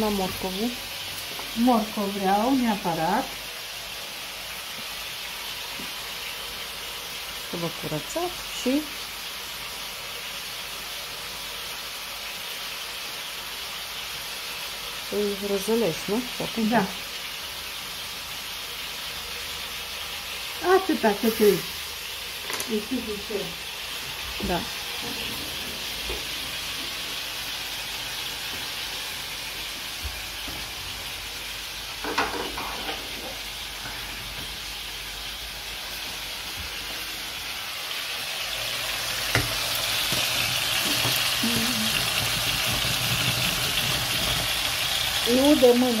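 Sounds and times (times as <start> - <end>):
pot of rice boiling: 0.0 - 46.0
sizzling on gas stove: 0.0 - 46.0.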